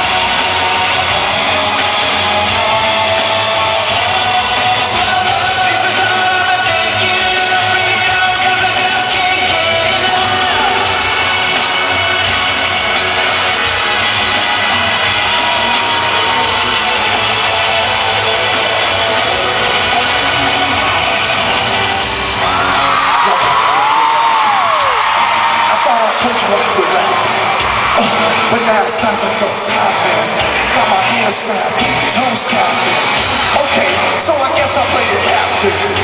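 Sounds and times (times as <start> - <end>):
person singing: 0.0 - 22.0
fans yelling and whooping: 0.0 - 36.0
live pop music over sound system: 0.0 - 36.0.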